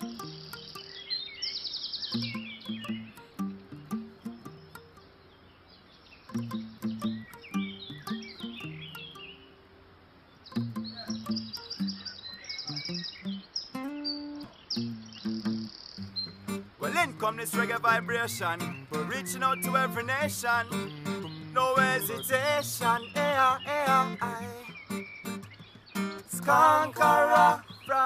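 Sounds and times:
high chirping figures: 0.0s - 5.2s, 6.3s - 9.6s, 10.5s - 28.0s.

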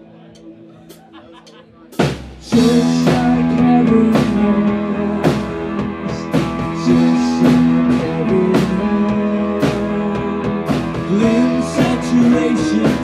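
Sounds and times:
drum and cymbal hits: 0.9s - 13.0s
electric guitars: 2.4s - 13.0s.

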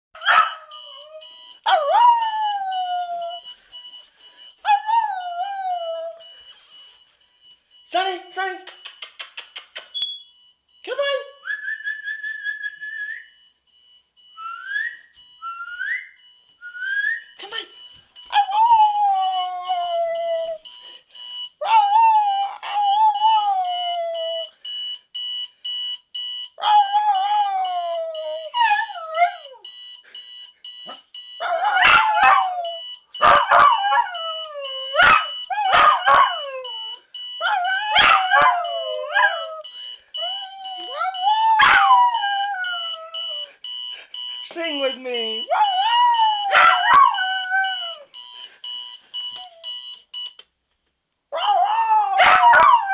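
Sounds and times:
alarm clock beeping: 0.2s - 11.4s, 13.3s - 50.4s
sharp clicks: 8.6s - 10.2s
dog howling and whining: 21.6s - 24.5s, 31.4s - 39.6s, 40.2s - 43.5s, 45.5s - 48.1s, 51.4s - 52.9s.

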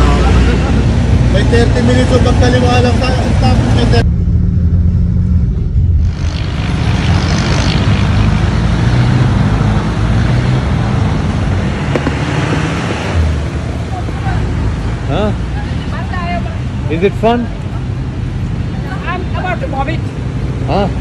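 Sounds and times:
low engine rumble: 0.0s - 21.0s
road traffic noise: 0.0s - 21.0s.

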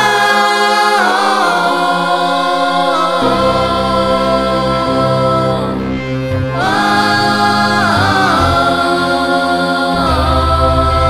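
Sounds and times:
wordless choir chords: 0.0s - 11.0s
deep bass: 2.4s - 7.1s, 9.9s - 11.0s.

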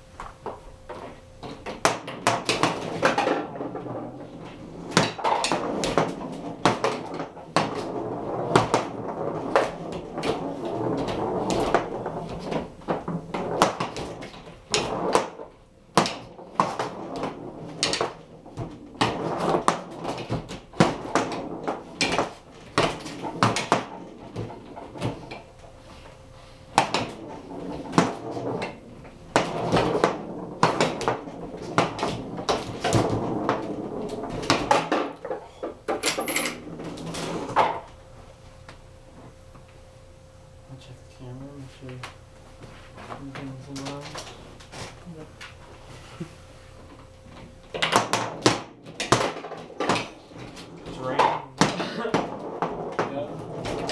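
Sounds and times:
foosball players striking ball: 0.2s - 26.0s, 26.6s - 38.0s, 46.9s - 53.9s
foosball rods sliding: 0.2s - 38.0s, 42.6s - 53.9s.

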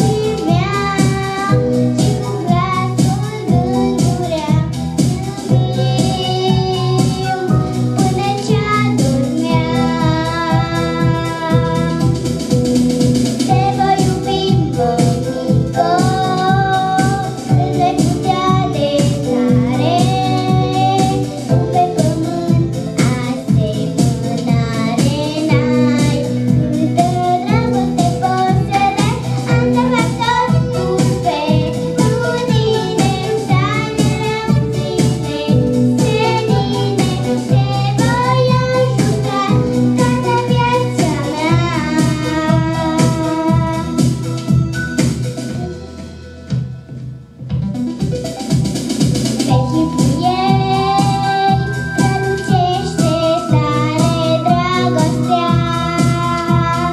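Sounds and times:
girl singing into microphone: 0.0s - 12.7s, 13.4s - 44.8s, 49.5s - 56.9s
musical accompaniment with beat: 0.0s - 56.9s.

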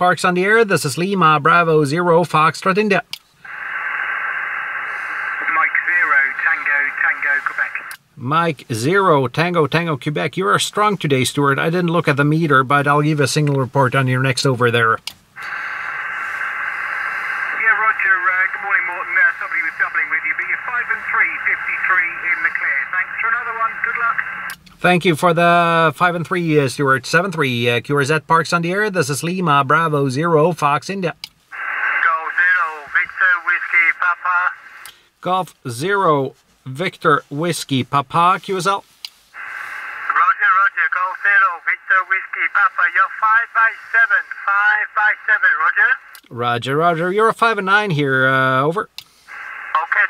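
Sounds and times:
radio channel hiss from speaker: 3.4s - 8.4s, 15.4s - 26.6s, 31.0s - 50.0s.

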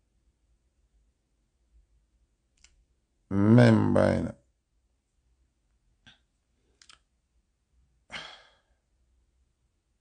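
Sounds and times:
faint clicks: 2.5s - 2.8s, 6.0s - 7.1s
man sighing: 8.1s - 8.8s.

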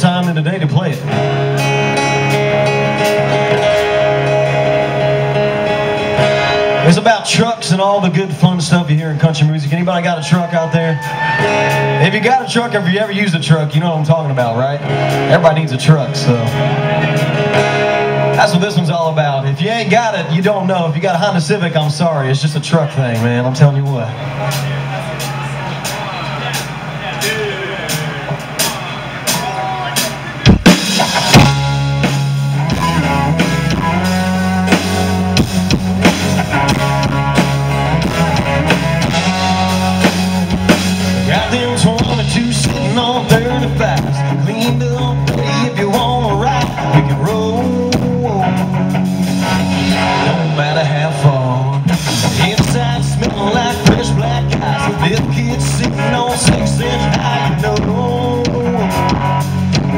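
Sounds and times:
country-rock band playing: 0.0s - 59.9s.

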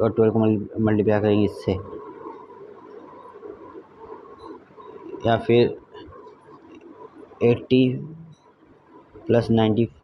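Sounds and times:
faint background hum: 0.0s - 10.0s.

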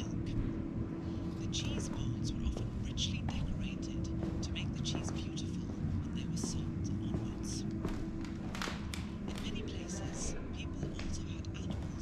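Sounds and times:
constant hum: 0.0s - 12.0s
steady low rumble: 0.0s - 12.0s
whispered voices: 0.0s - 12.0s.

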